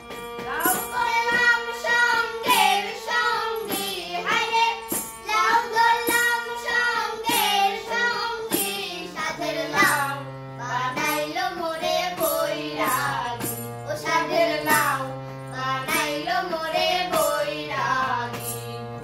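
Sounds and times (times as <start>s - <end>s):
harmonium chords: 0.0s - 19.0s
woman and child singing: 0.5s - 18.6s.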